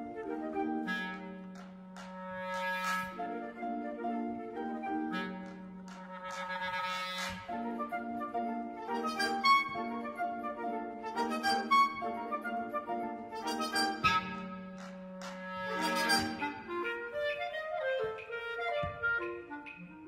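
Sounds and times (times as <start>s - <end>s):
clarinet playing quick runs: 0.0s - 20.0s
concert band accompanying: 13.3s - 19.8s.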